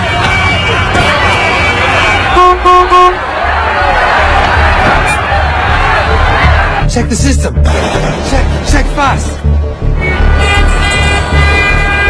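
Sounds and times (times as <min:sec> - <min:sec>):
car horn toots: 0:00.0 - 0:03.2, 0:10.0 - 0:12.0
busy street traffic: 0:00.0 - 0:06.9, 0:07.7 - 0:12.0
people shouting: 0:00.0 - 0:06.9.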